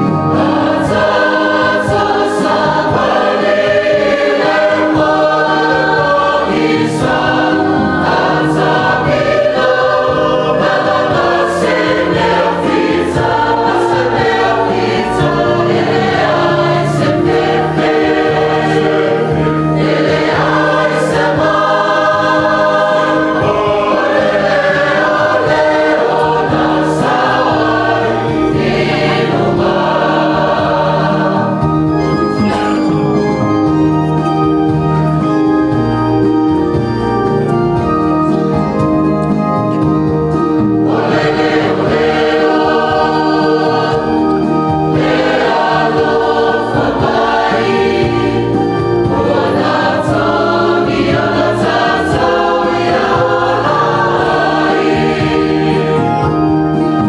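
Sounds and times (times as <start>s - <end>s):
choir singing a hymn: 0.0s - 57.0s
electronic keyboard: 0.0s - 57.0s.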